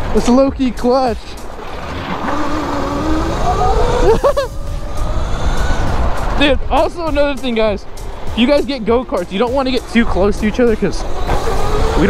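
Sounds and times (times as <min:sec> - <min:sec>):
low rumble: 0:01.8 - 0:08.2
electric motor whining: 0:02.2 - 0:06.4, 0:11.0 - 0:12.0.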